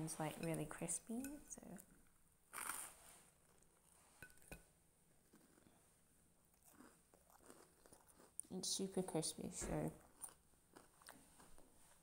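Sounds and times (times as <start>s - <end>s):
quiet chewing: 5.2s - 8.5s, 10.0s - 12.0s.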